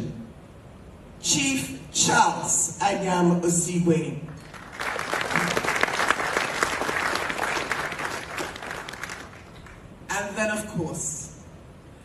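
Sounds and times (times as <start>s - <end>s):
audience applauding: 4.4s - 9.8s.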